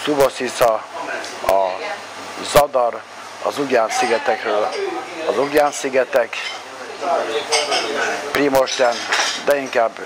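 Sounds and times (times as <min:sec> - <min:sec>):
man speaking: 0:02.4 - 0:10.0.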